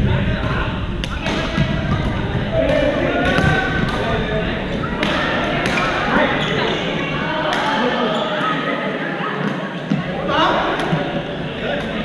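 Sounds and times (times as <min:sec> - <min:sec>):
players' voices: 0:00.0 - 0:12.0
rackets hitting shuttlecocks: 0:00.4 - 0:06.4, 0:10.7 - 0:11.1.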